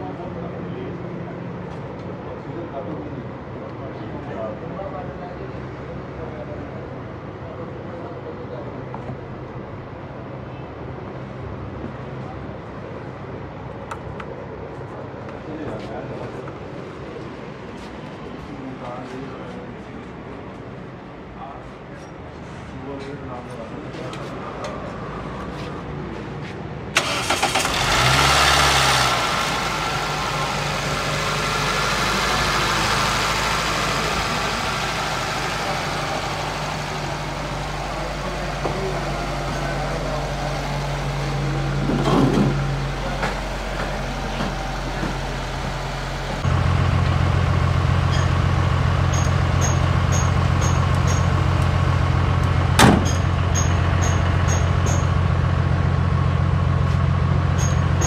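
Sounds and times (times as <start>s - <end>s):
car engine starting and idling: 26.9s - 58.0s.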